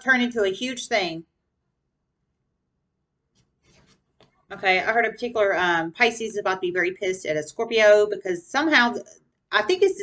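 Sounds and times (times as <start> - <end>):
cards rubbing together: 3.6 - 4.1.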